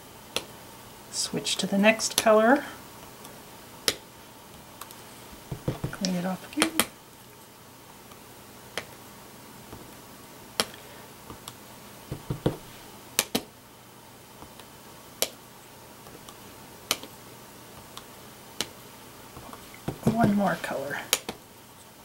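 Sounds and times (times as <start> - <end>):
dull knocks: 5.5 - 6.0, 12.1 - 12.7
rubber stamp tapping on paper: 5.5 - 6.1, 12.1 - 13.4, 19.8 - 20.4.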